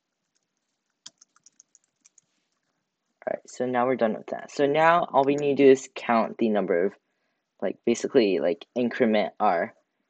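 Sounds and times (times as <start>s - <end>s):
faint keyboard typing: 0.0s - 2.8s.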